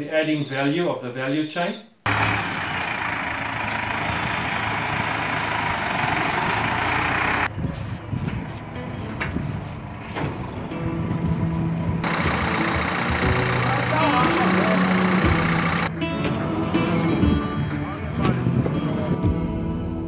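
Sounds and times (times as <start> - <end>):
tractor engine running: 2.0 - 17.2.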